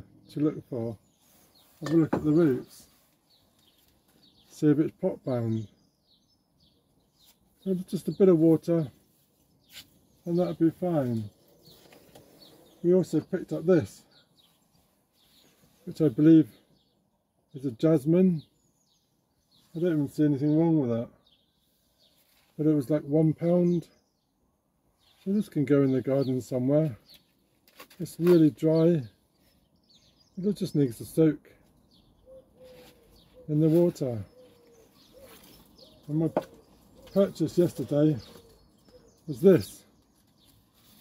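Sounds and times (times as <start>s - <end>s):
man talking: 0.0s - 1.0s, 1.8s - 3.0s, 4.5s - 5.8s, 7.6s - 9.0s, 10.2s - 11.4s, 12.8s - 14.1s, 15.8s - 16.6s, 17.5s - 18.5s, 19.7s - 21.2s, 22.6s - 23.9s, 25.2s - 27.0s, 28.0s - 29.2s, 30.4s - 31.6s, 33.4s - 34.4s, 36.0s - 38.4s, 39.3s - 39.9s
faint bird chirps: 0.0s - 41.0s
bird cooing: 32.2s - 39.3s.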